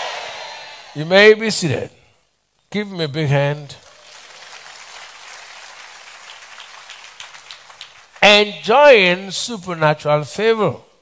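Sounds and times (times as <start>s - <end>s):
crowd applauding: 3.8s - 8.5s.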